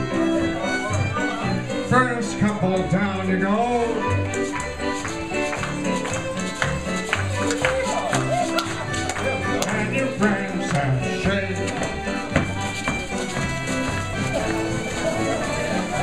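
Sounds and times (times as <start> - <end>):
fiddles and keyboard dance tune: 0.0 - 16.0
feet tapping on wooden floor: 2.9 - 16.0.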